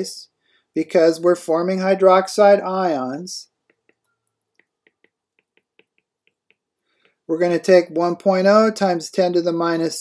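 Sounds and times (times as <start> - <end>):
stylus tapping on tablet screen: 3.6 - 7.3.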